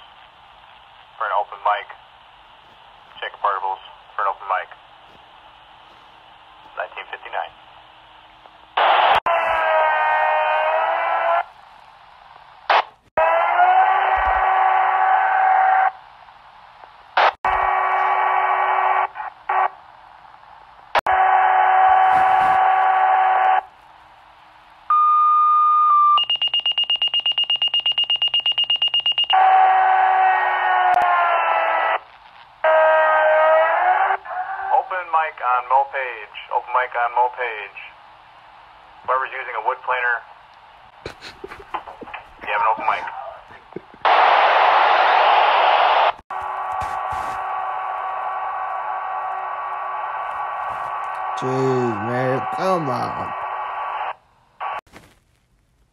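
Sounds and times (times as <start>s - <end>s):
steady high tone: 51.1s - 53.3s.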